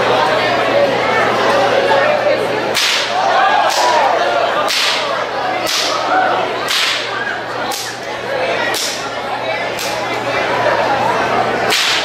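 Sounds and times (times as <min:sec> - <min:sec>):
whip cracks: 0:02.8 - 0:03.9, 0:04.7 - 0:05.0, 0:06.7 - 0:07.1, 0:11.7 - 0:12.0.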